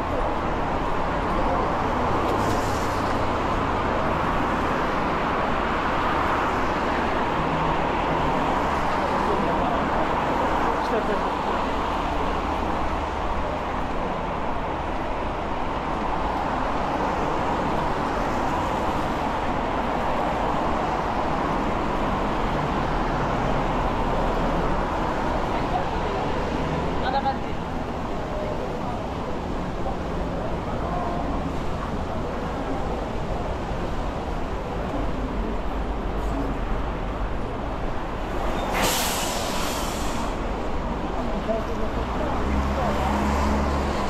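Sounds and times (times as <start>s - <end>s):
road traffic noise: 0.0s - 44.0s.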